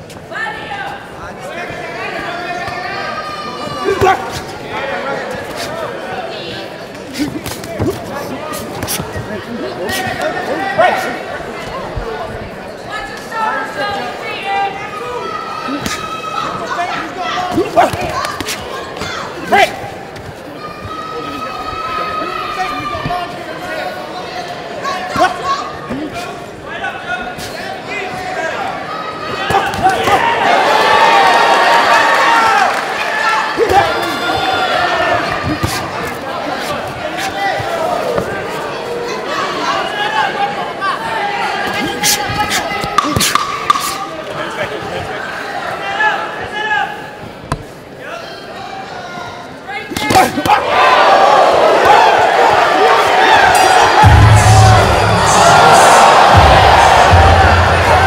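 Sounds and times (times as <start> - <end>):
spectators shouting: 27.8 - 47.0, 48.0 - 58.0.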